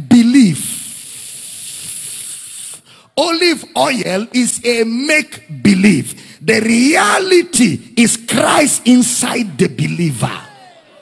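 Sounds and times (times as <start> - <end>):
long steady hiss into microphone: 0.4 - 3.1.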